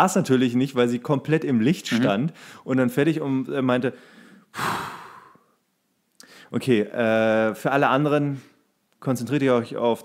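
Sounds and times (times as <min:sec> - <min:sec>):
man blowing out a sigh: 0:04.0 - 0:05.5.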